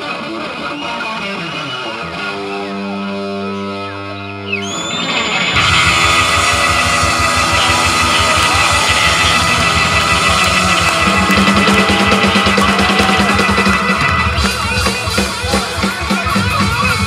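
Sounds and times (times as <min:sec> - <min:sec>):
live rock band: 0:00.0 - 0:17.0
drums fast steady beat: 0:05.6 - 0:17.0.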